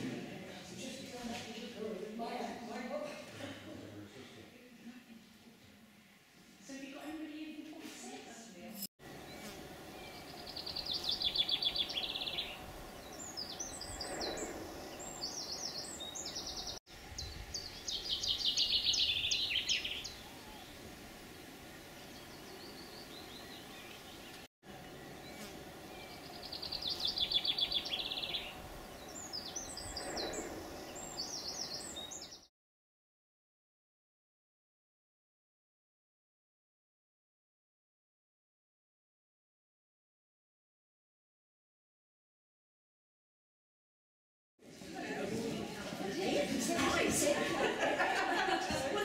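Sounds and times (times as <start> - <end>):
steady background hum: 9.0 - 16.2, 20.0 - 31.7
songbird trilling and chirping: 9.3 - 20.7, 22.0 - 32.5.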